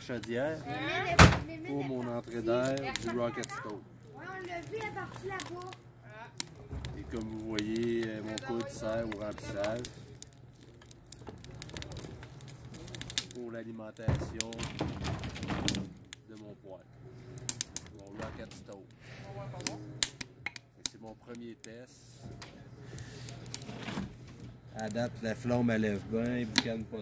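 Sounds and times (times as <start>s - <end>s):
wood fire crackling: 0.0s - 27.0s.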